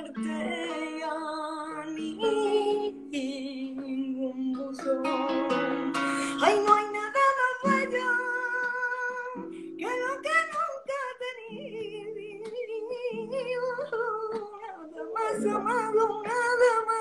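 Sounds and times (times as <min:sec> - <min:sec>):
guitar chords: 0:00.0 - 0:17.0
woman singing a ballad: 0:00.0 - 0:17.0.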